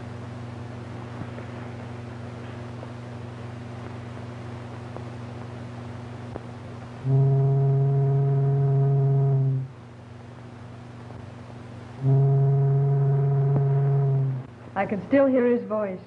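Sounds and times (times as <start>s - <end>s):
low ship's horn blasts: 7.0s - 9.8s, 12.0s - 14.5s.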